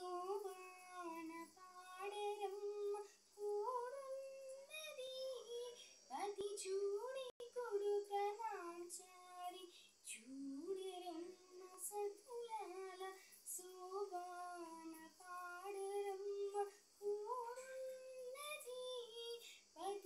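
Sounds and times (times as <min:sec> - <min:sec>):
girl singing unaccompanied: 0:00.0 - 0:20.0.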